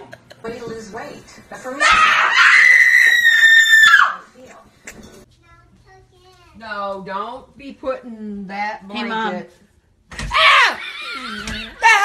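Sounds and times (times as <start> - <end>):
woman screaming: 1.8 - 4.3, 10.3 - 10.9, 11.6 - 12.0.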